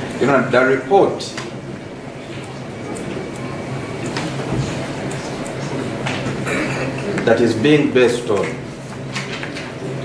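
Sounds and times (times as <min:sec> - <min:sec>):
low hum and murmur: 0:00.0 - 0:10.0.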